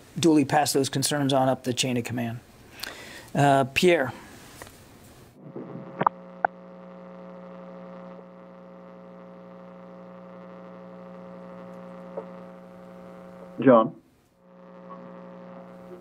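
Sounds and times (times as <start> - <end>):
electrical hum on phone line: 2.8 - 16.0.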